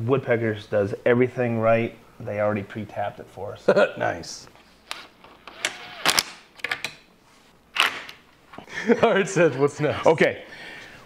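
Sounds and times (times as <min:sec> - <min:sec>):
cordless drill whirring: 0:04.9 - 0:06.2.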